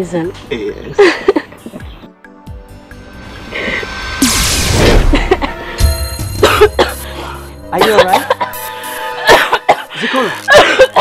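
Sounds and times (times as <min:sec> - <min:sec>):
background music: 0:00.0 - 0:11.0
woman coughing and choking: 0:06.4 - 0:07.0, 0:09.2 - 0:11.0.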